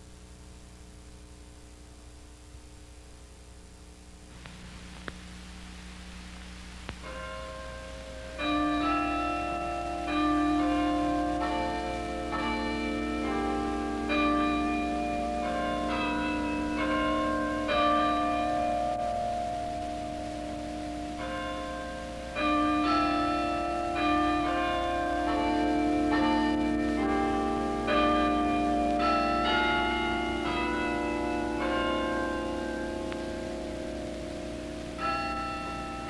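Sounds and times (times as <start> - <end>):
tower bells playing melody: 7.0 - 36.0.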